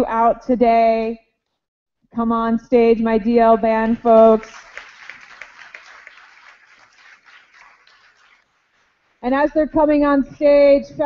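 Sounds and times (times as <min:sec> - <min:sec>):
audience applause: 0:03.9 - 0:09.1.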